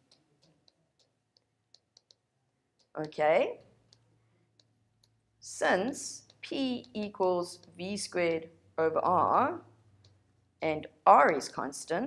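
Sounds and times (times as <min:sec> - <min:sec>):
stylus tapping on tablet: 0:00.0 - 0:10.4.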